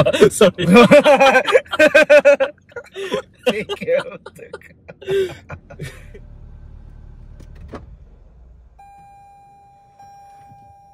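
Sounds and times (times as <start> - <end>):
low rumble inside car cabin: 0.0 - 10.9.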